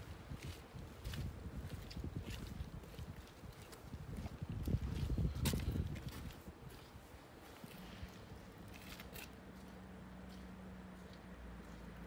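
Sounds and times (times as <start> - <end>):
footsteps walking: 0.2 - 12.0.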